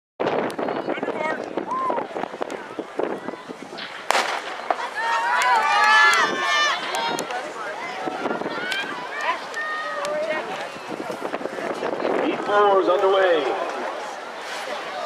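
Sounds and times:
spectators shouting and cheering: 0.3 - 15.0
starter's pistol shot: 3.8 - 4.9.

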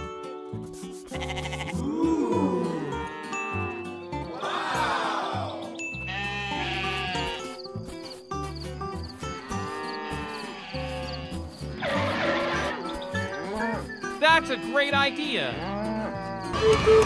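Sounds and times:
background music: 0.0 - 17.0
sheep bleating: 1.1 - 7.6, 9.4 - 16.6.

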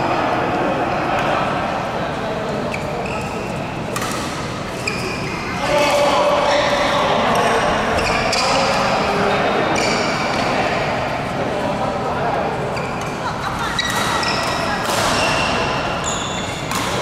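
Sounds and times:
court shoes squeaking: 2.5 - 11.2, 12.5 - 17.0
racket hitting shuttlecock: 3.9 - 4.8, 13.8 - 17.0.

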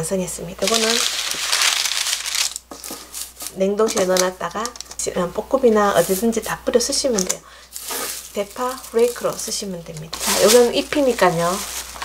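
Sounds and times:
baking paper crinkling: 0.6 - 12.0
dried flakes sliding on paper: 6.0 - 6.6, 7.7 - 9.6, 10.2 - 12.0.

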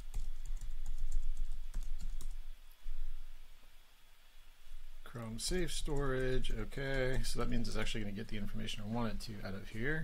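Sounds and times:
typing on computer keyboard: 0.0 - 2.4.

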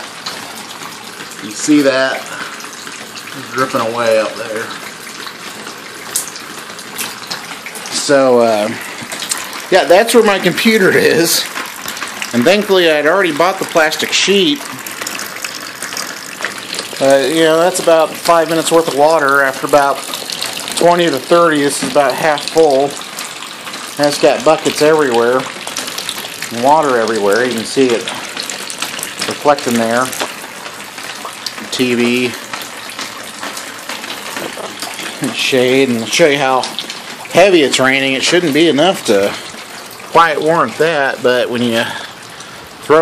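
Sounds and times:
water dripping into plastic bin: 0.0 - 43.0.

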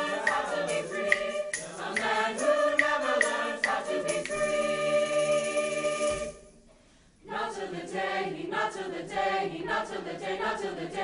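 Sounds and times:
mixed choir singing: 0.0 - 6.4, 7.2 - 11.0
tambourine tapping a beat: 0.0 - 6.5.

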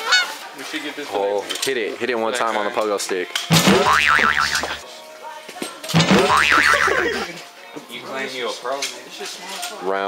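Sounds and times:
cartoon boing sound effect: 3.5 - 4.8, 5.9 - 7.3.

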